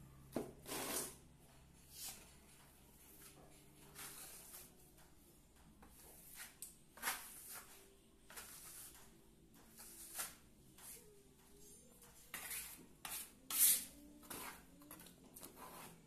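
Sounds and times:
trowel scraping wet mortar: 12.4 - 14.6.

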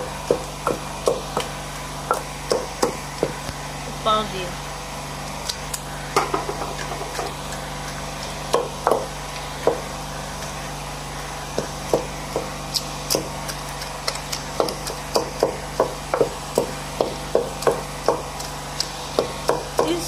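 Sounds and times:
pestle pounding in a mortar: 0.0 - 3.5, 6.1 - 10.6, 11.5 - 20.0.

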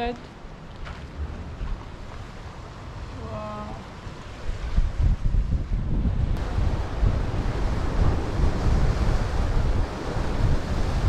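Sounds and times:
wind buffeting microphone: 0.0 - 11.0
sea surf hissing: 6.4 - 11.0.

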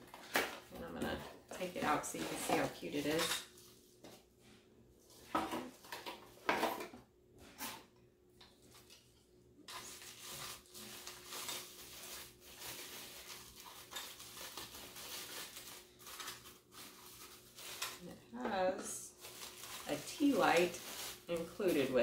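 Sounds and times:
plastic wrapping crinkling: 9.7 - 22.0.

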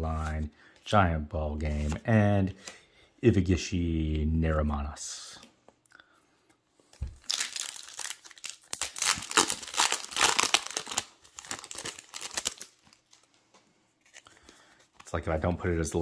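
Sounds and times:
foil wrapper tearing and crinkling: 7.2 - 13.0.

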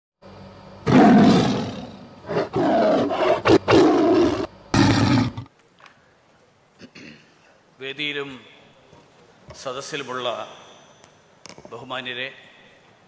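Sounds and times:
animal roaring: 0.8 - 5.5.

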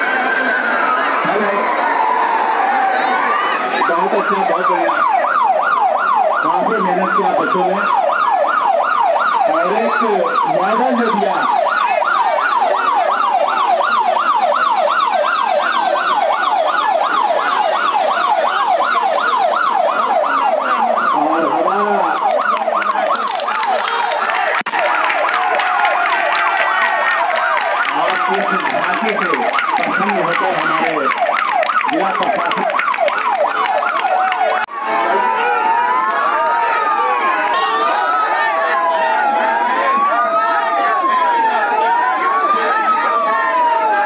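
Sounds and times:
crowd voices: 0.0 - 44.0
electronic siren yelping: 0.0 - 44.0.

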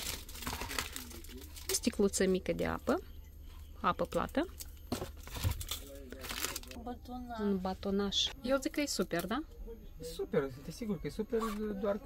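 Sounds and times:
plastic water bottle crackling: 0.0 - 2.0
plastic wrappers crinkling: 0.0 - 3.0, 4.0 - 6.9.

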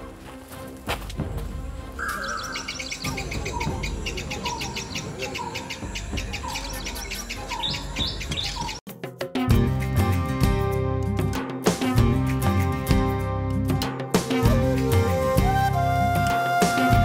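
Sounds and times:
birds chirping rapidly: 2.0 - 8.8.

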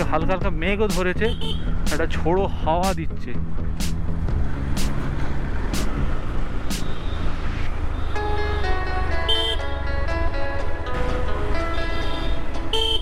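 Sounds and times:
background music melody: 0.0 - 7.6, 8.2 - 13.0.

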